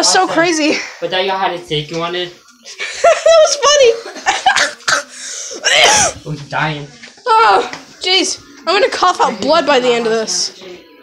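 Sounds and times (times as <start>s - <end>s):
person coughing: 4.5s - 6.2s.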